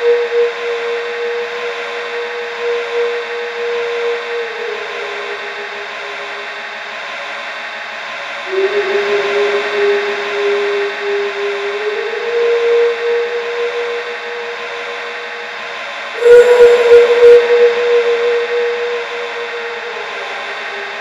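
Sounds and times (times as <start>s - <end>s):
experimental electronic drone: 0.0s - 21.0s
held tone stepping up in pitch: 16.2s - 21.0s.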